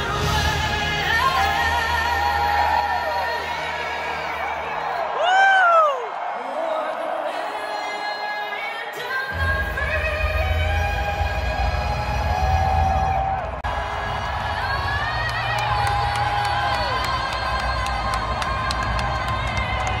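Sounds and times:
woman singing over loudspeakers: 0.0 - 20.0
crowd cheering: 0.2 - 20.0.

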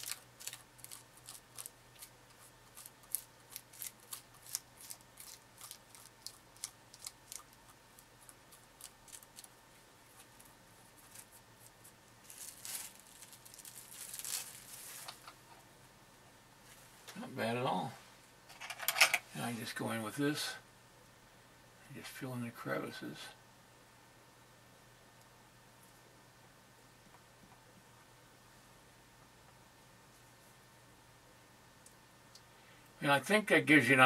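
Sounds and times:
cling wrap rustling: 0.0 - 15.4.

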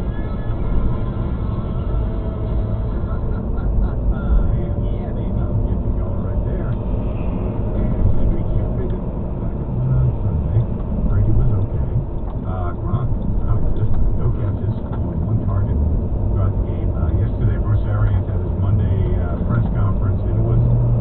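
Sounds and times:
car engine and road rumble: 0.0 - 21.0.

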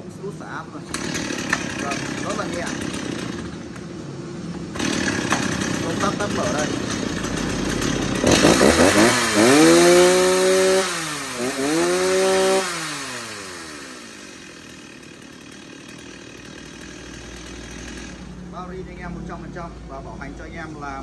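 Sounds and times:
chainsaw engine revving: 0.8 - 3.9, 4.6 - 18.6.

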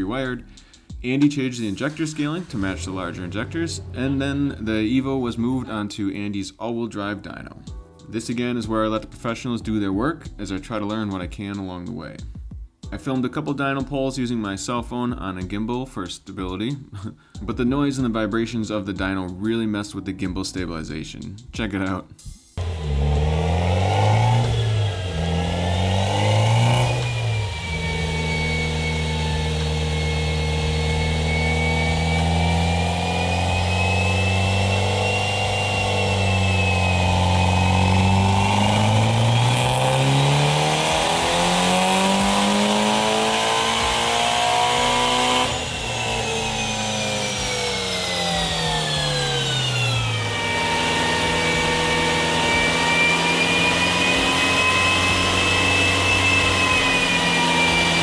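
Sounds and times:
high turbo whine: 0.0 - 5.7, 22.6 - 58.0
car engine revving: 1.2 - 5.6, 22.6 - 58.0.

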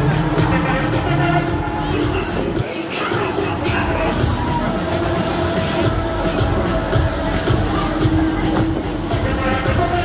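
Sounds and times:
fairground ride machinery: 0.0 - 10.0
loud ride music: 0.0 - 10.0.

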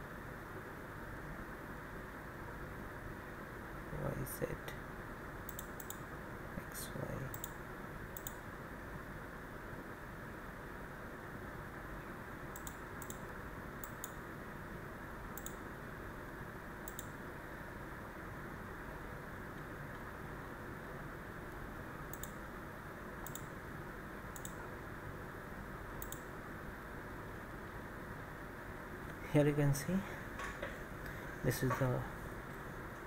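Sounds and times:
low room and microphone hiss: 0.0 - 33.0
computer mouse clicks: 5.5 - 6.1, 7.3 - 8.5, 12.5 - 14.2, 15.3 - 15.6, 16.8 - 17.2, 21.5 - 22.4, 23.2 - 23.6, 24.3 - 24.6, 26.0 - 26.3.

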